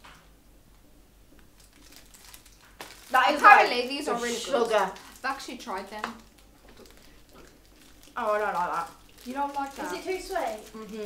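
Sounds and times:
plastic wrapper crinkling: 1.3 - 11.0.

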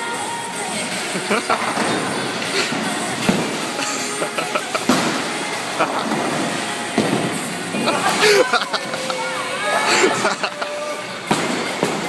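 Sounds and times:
background music: 0.0 - 12.0
bowling balls rolling: 0.7 - 12.0
bowling pins clattering: 0.8 - 9.5
voices: 7.9 - 11.3.

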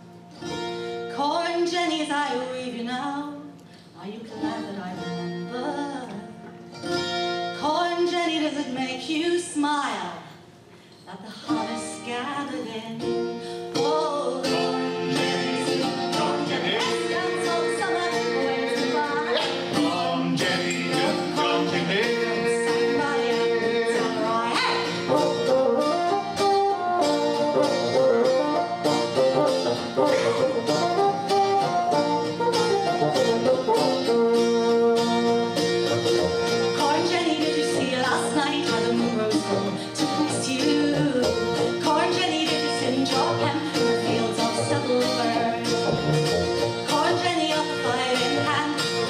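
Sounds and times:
strummed acoustic guitar: 0.0 - 2.4, 4.4 - 9.0, 11.3 - 49.0
bassoon melody: 14.6 - 38.1, 44.0 - 47.3.

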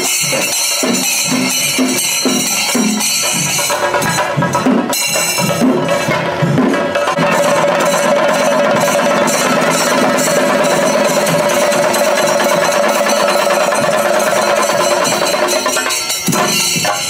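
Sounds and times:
drums in fast roll: 0.0 - 17.0.

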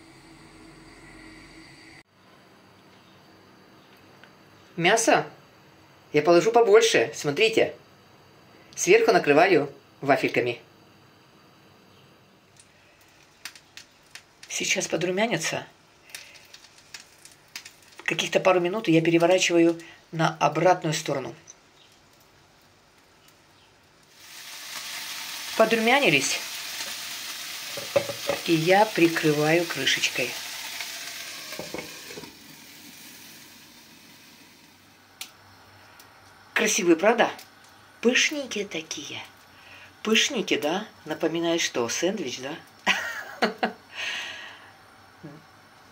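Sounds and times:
faint steady hiss: 0.0 - 45.9
muffled sizzle of frying: 0.0 - 45.9.

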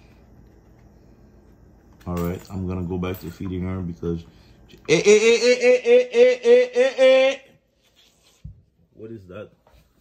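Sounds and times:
person laughing: 4.9 - 7.5.

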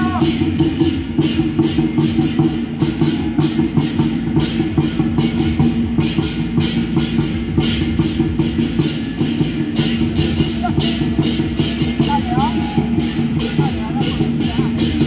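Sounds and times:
drums beaten rapidly: 0.0 - 15.0.

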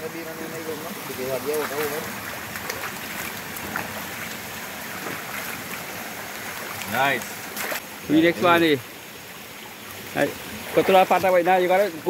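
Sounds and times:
flowing spring water: 0.0 - 12.0.

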